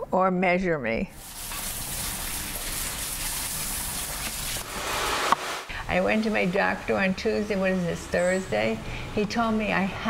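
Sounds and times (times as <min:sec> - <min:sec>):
water spraying onto hair: 0:01.2 - 0:05.7.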